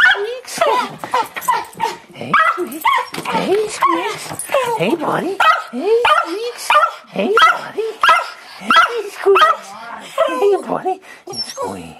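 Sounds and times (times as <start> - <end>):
dog whining yelps: 1.4 - 4.7.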